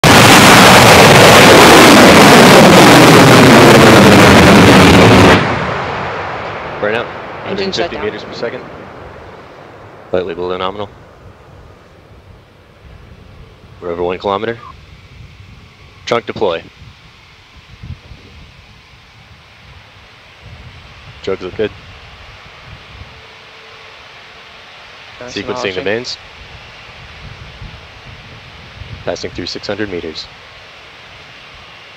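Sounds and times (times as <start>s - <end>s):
uneven low rumble: 0.0s - 23.4s
rocket engines firing: 0.0s - 24.3s, 25.1s - 31.9s
steady hiss: 6.2s - 31.9s.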